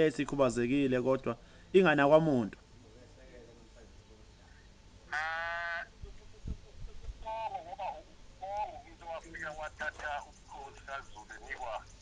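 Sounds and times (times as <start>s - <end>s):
sheep or goat bleating: 5.1s - 5.9s.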